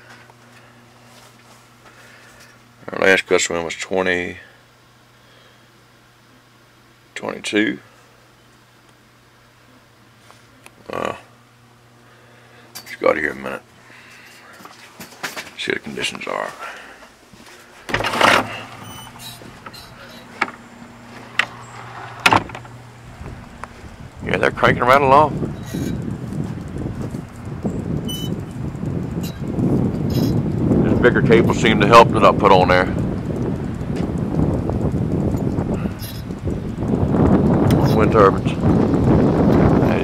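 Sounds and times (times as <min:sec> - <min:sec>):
low hum: 0:15.3 - 0:40.0
door opening: 0:17.9 - 0:23.6
wind buffeting microphone: 0:21.8 - 0:40.0
sharp knocks: 0:22.2 - 0:22.7.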